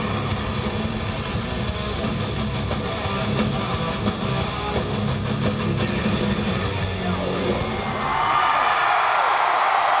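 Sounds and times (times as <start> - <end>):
heavy metal band playing live: 0.0 - 8.2
crowd cheering and screaming: 7.2 - 10.0.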